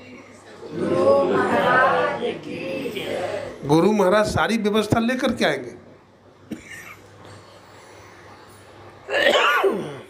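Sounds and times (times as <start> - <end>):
man sneezing: 9.1 - 10.0.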